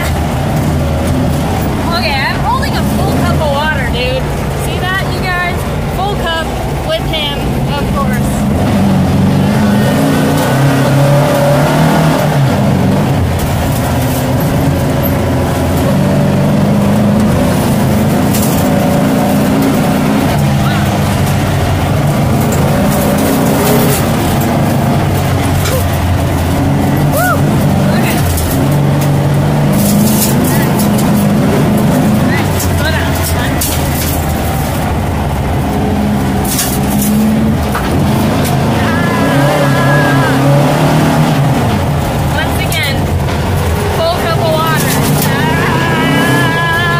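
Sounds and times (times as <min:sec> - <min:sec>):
rattles and knocks of car: 0:00.0 - 0:38.8, 0:40.5 - 0:45.6
car engine running under load: 0:00.0 - 0:46.9.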